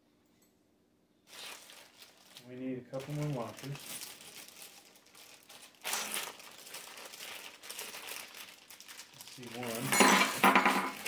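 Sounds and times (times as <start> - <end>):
parts packet crinkling and rustling: 1.3 - 11.0.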